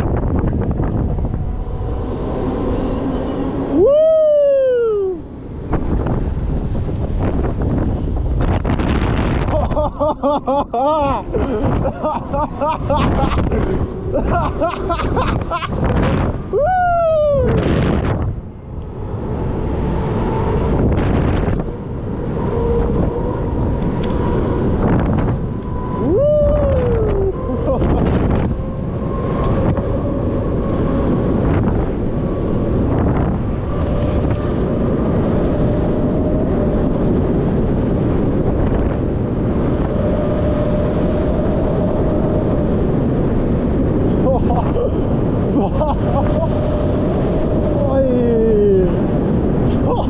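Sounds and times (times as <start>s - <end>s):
steady whine: 0.0s - 50.0s
wind rushing over microphone: 0.0s - 50.0s
person crying out: 3.8s - 5.2s, 16.6s - 17.5s.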